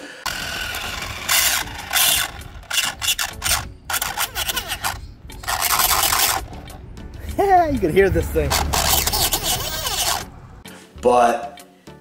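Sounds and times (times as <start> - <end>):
rc car gears grinding: 0.2 - 6.8, 8.5 - 10.4.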